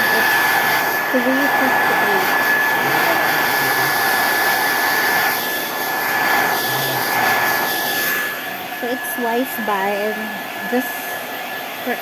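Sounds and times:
hair dryer running: 0.0 - 12.0.

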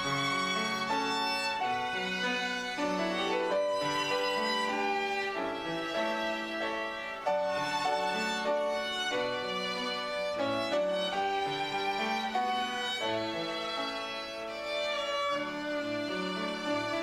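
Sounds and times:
violin melody: 0.0 - 17.0.

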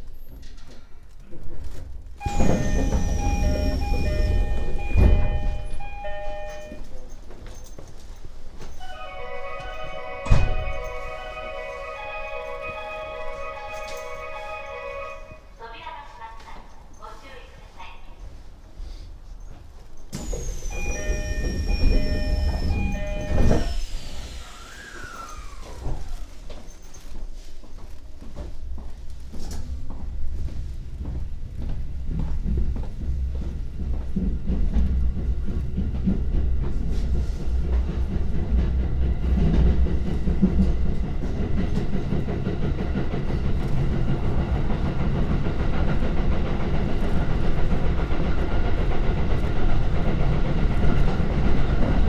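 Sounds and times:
train machinery low rumble: 0.0 - 52.0
sliding doors shutting: 2.2 - 6.8, 9.5 - 14.7, 20.1 - 26.7
door-closing chime: 2.2 - 7.8, 8.6 - 11.4, 12.0 - 14.7, 20.1 - 23.9.

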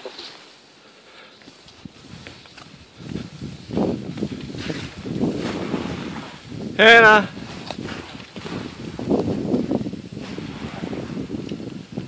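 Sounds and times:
wind buffeting microphone: 1.6 - 12.0.

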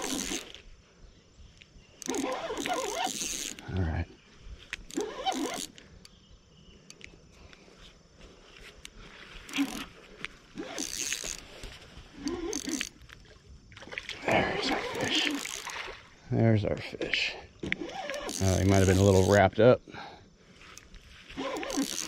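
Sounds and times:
fish splashing in water: 13.7 - 16.1.

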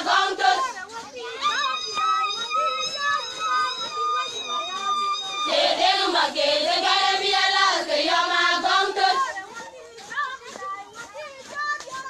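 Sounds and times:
young female voices calling and singing: 0.0 - 12.0.

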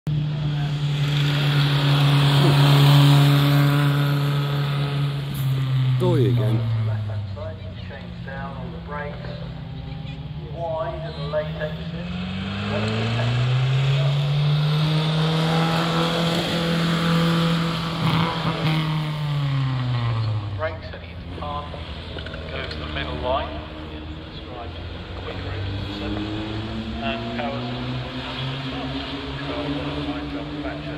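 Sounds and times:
racing car engine running hard: 0.1 - 30.9.

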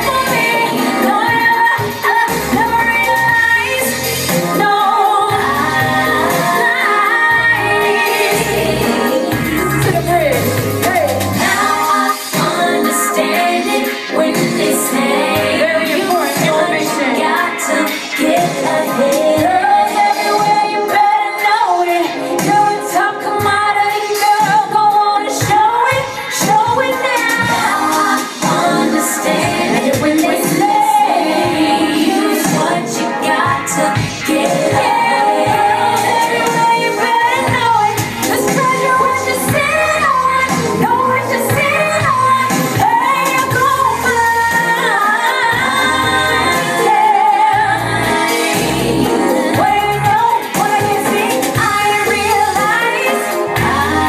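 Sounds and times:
amplified backing music: 0.0 - 54.0
woman singing into a microphone: 0.0 - 54.0.

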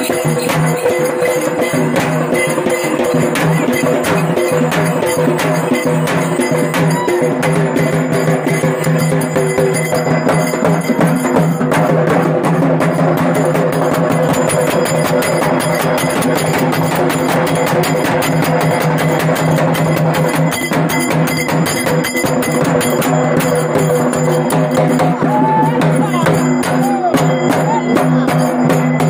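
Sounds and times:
fast drumming: 0.0 - 29.0.

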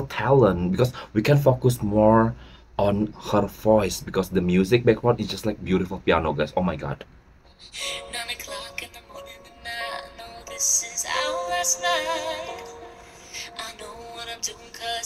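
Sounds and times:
woman singing pop song: 7.6 - 15.0
piano accompaniment: 7.7 - 15.0.

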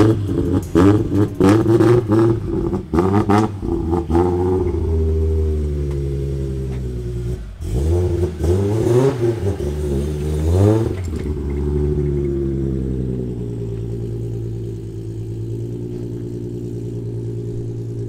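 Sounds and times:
car engine idling and revving: 0.0 - 18.0.

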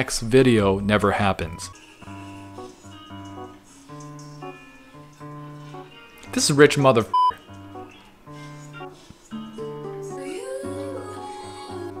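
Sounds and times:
soft background music: 0.0 - 12.0
censor bleep: 7.1 - 7.4.

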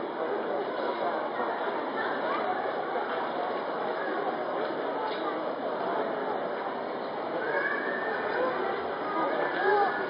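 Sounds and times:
murmur of crowd: 0.0 - 10.0.

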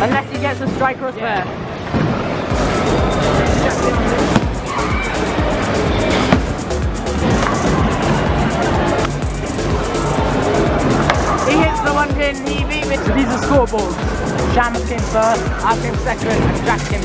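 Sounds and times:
loud background music: 2.5 - 17.0
bowling ball rolling: 5.9 - 9.1.

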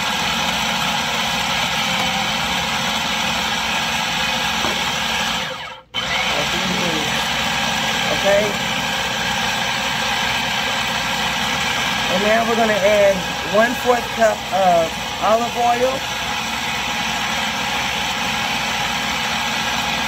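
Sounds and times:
food processor running: 0.0 - 20.0.

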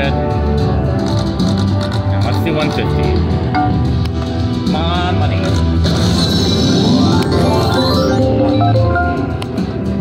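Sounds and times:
slot machine music: 5.8 - 9.4
slot machine reels spinning: 6.0 - 8.4.

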